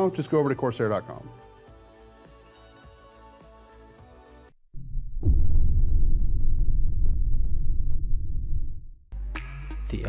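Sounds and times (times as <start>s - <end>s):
background music: 0.0s - 4.6s, 9.2s - 10.0s
deep rumbling transition effect: 4.8s - 9.1s.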